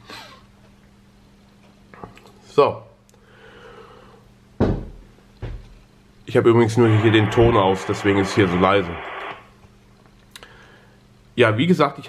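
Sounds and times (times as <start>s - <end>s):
faint low hum: 5.8s - 11.0s.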